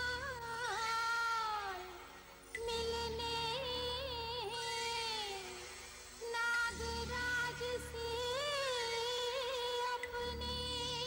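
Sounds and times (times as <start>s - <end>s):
wordless female singing: 0.0s - 11.0s.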